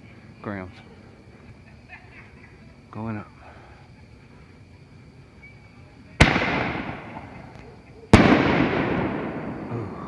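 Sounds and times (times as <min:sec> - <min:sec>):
loud firework launch bang: 0:06.2 - 0:07.4, 0:08.1 - 0:09.9.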